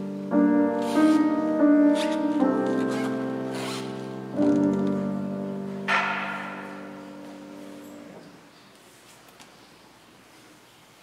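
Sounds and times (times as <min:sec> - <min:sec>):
piano playing slow chords: 0:00.0 - 0:08.5.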